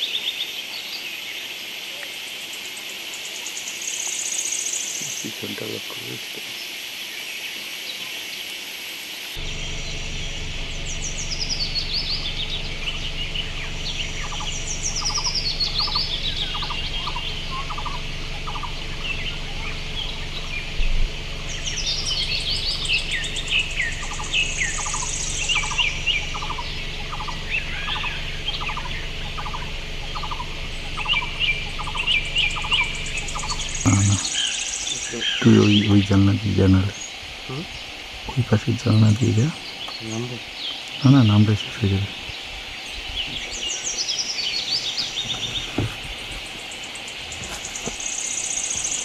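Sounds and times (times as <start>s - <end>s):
forest birds singing: 0.0s - 49.0s
steady low rumble: 9.4s - 49.0s.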